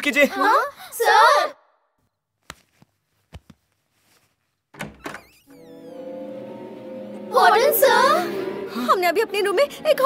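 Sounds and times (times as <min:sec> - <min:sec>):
door thuds: 0:04.7 - 0:05.4
sustained music chords: 0:05.5 - 0:10.0.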